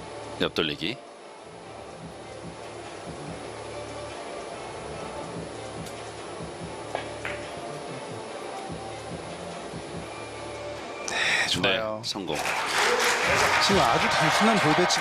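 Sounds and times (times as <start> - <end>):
cue tip striking ball: 6.9 - 7.5.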